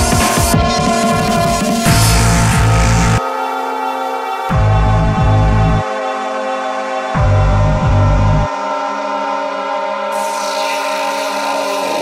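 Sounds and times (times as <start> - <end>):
droning synth tones: 1.8 - 12.0.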